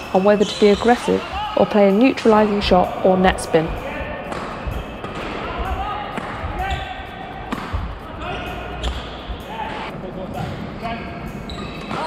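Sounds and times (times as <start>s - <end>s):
shoes squeaking on court: 0.0s - 2.6s, 6.2s - 7.0s, 7.6s - 9.9s, 11.5s - 12.0s
racket hitting shuttlecock: 7.5s - 7.9s.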